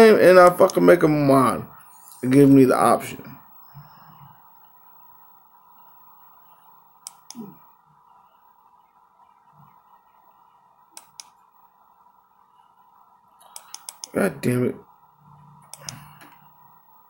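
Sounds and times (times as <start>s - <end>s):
steady room hum: 0.0s - 17.0s
computer mouse clicks: 11.0s - 11.4s, 13.4s - 14.2s, 15.6s - 16.5s.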